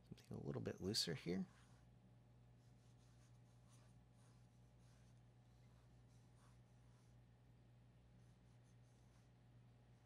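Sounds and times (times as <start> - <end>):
low electrical hum: 0.0 - 10.0
pencil sketching on paper: 1.4 - 10.0.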